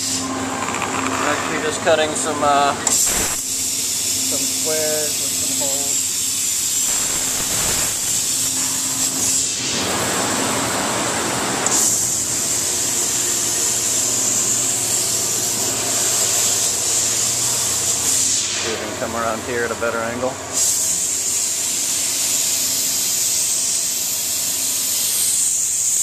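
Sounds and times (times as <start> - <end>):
laser cutting machine hissing: 0.0 - 0.4, 1.1 - 26.0.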